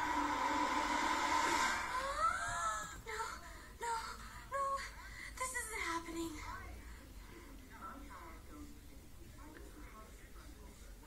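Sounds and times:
hiss: 0.0s - 2.0s.

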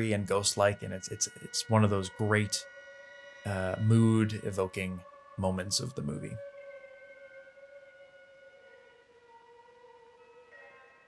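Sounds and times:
sustained high film-score notes: 0.0s - 11.0s.

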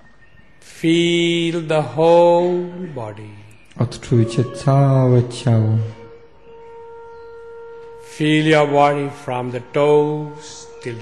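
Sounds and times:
steady held tone: 2.0s - 11.0s.

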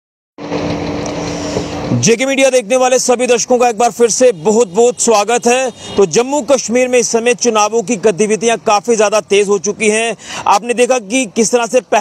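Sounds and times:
motor vehicle engine running: 0.4s - 12.0s.

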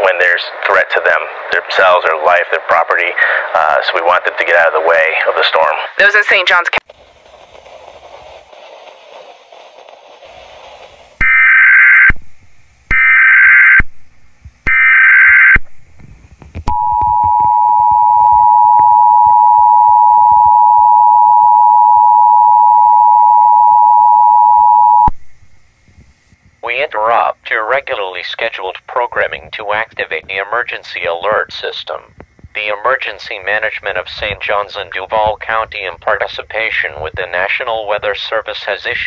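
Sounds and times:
faint hiss: 0.0s - 11.2s, 15.8s - 16.7s, 25.2s - 39.0s.

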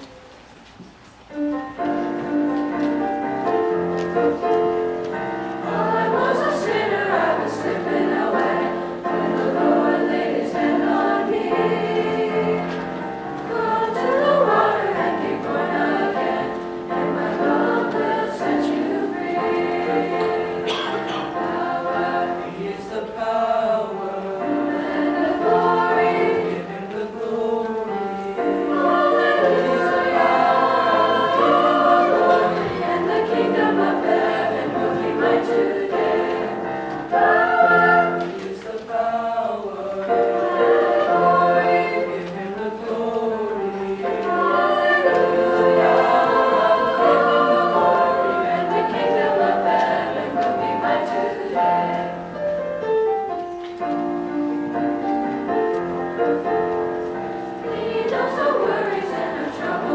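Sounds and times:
children's choir singing: 0.0s - 59.9s.

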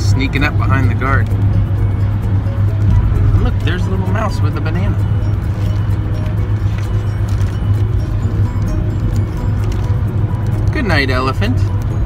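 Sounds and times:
road and engine noise inside car: 0.0s - 12.0s.

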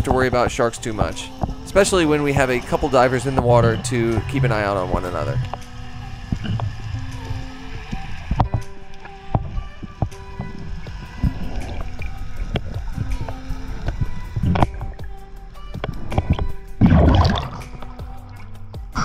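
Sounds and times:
rush of water: 0.0s - 18.0s
background music: 0.0s - 19.0s.

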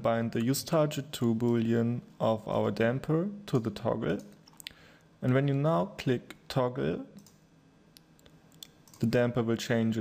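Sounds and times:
computer mouse clicks: 7.2s - 7.4s.

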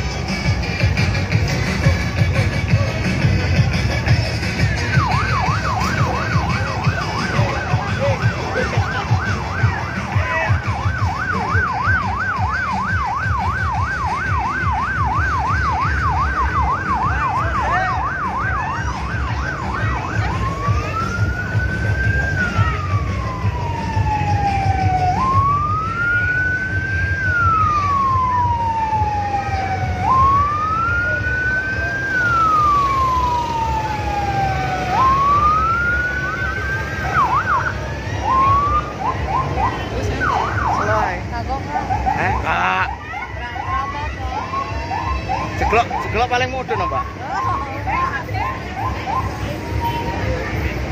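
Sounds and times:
electronic vehicle siren: 0.1s - 50.9s.

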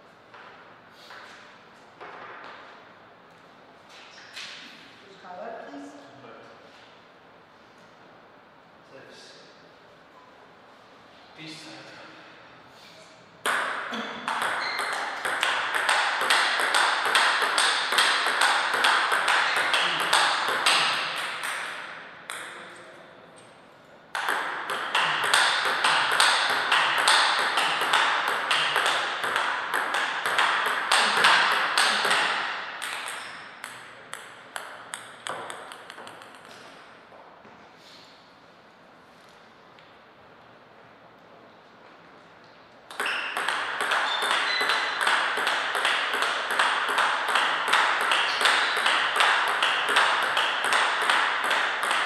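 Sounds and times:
ping-pong ball clicks: 13.4s - 22.8s, 24.1s - 36.8s, 42.9s - 52.0s.

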